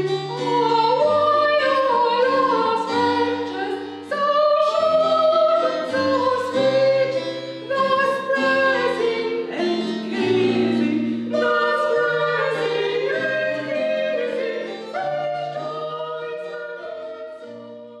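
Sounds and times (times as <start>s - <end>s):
women singing in harmony: 0.0s - 18.0s.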